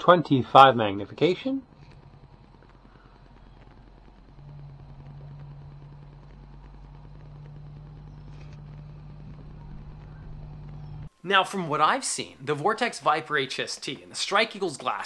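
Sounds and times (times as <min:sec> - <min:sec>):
motor humming: 0:01.6 - 0:11.1.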